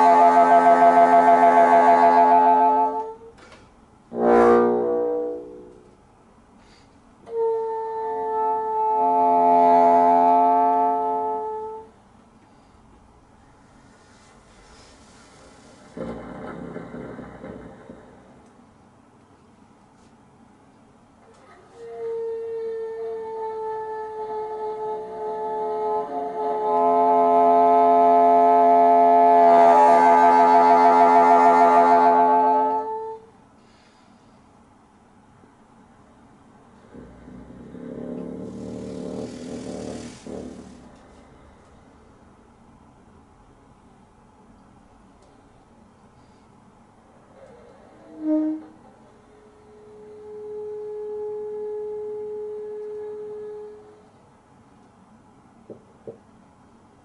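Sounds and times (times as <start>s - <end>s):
bassoon playing sustained notes: 0.0s - 3.4s, 4.1s - 6.0s, 7.2s - 11.9s, 21.8s - 33.3s, 48.0s - 54.1s.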